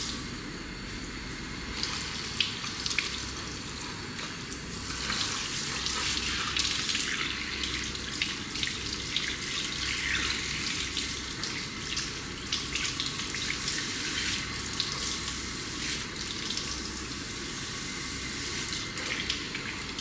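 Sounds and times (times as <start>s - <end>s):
shower sprayer running into basin: 1.7s - 20.0s.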